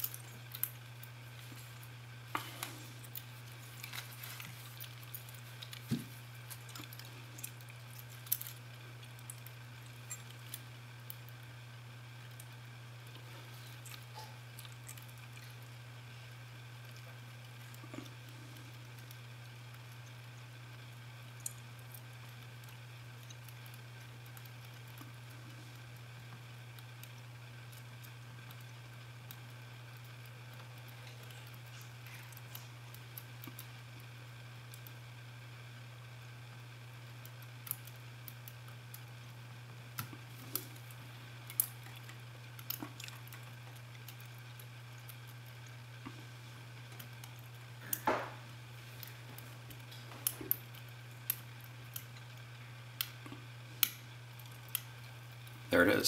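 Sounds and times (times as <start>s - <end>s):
low hum: 0.0s - 56.0s.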